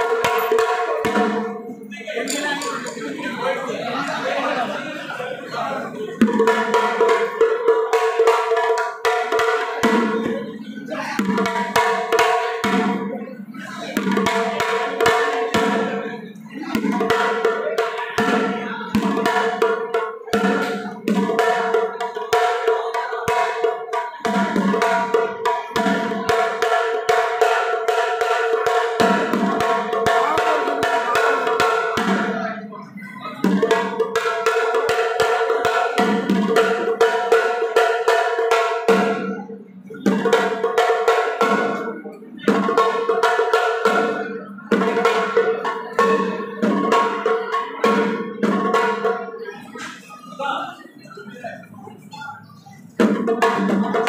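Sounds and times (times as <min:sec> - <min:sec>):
drums struck rapidly: 0:00.0 - 0:04.4, 0:05.9 - 0:50.6, 0:51.5 - 0:54.0.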